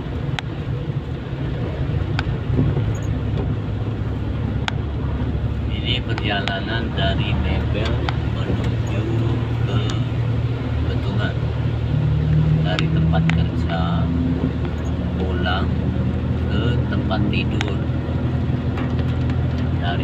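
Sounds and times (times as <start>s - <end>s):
car engine rumble: 0.0s - 20.0s
tyres on wet road: 0.0s - 20.0s
voices: 5.7s - 11.5s, 12.6s - 14.2s, 14.8s - 15.8s, 16.4s - 17.9s.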